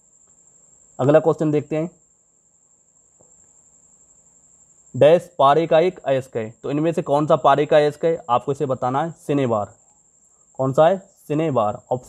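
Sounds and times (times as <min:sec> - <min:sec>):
steady high-pitched whine: 0:00.0 - 0:12.0.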